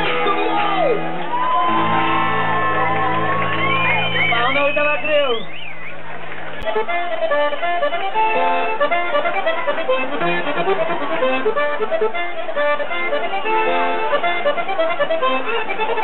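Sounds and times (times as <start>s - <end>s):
button accordion melody: 0.0s - 4.6s, 6.6s - 16.0s.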